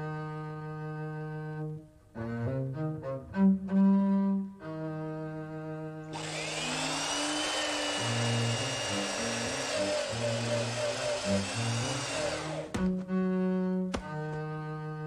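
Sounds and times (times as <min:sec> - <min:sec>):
cello and double bass music: 0:00.0 - 0:15.0
electric drill whining: 0:06.1 - 0:12.8.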